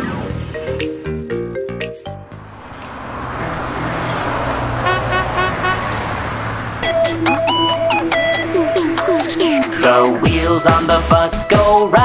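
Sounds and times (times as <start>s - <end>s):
engine and road noise: 0.0s - 11.6s
rapid pitched blips: 6.8s - 10.9s
quick run of musical notes: 6.8s - 11.0s.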